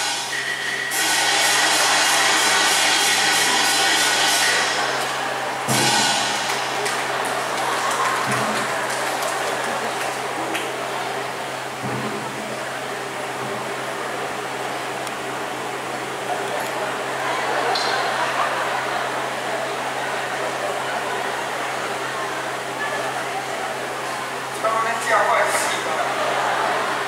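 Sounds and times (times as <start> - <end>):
opera cymbals and drums: 0.0 - 6.9.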